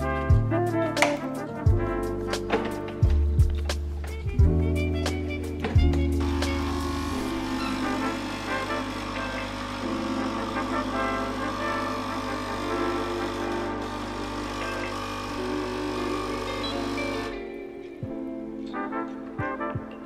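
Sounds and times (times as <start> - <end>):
espresso machine pump humming: 6.2 - 17.6.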